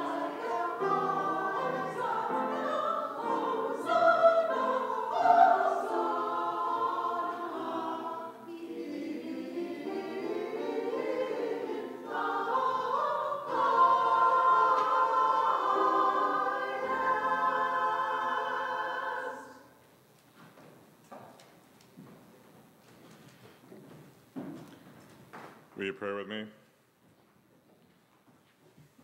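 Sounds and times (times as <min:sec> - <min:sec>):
choir singing: 0:00.0 - 0:19.8.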